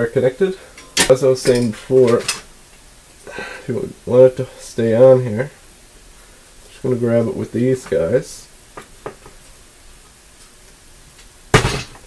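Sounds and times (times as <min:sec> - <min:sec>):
pliers clacking on wire: 0:00.8 - 0:02.5.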